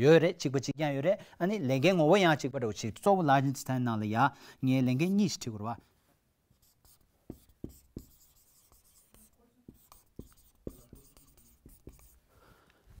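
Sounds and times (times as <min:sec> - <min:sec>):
marker pen on whiteboard: 0:04.8 - 0:12.3.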